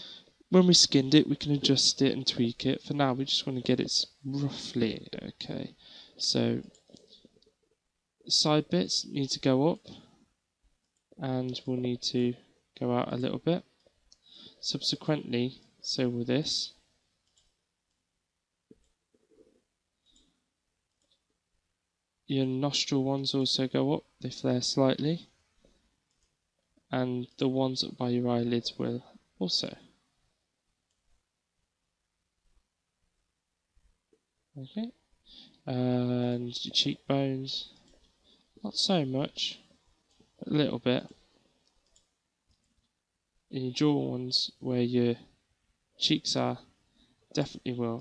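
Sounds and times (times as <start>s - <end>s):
computer mouse clicks: 17.2s - 18.0s, 20.9s - 21.3s, 25.6s - 26.8s, 41.0s - 43.0s.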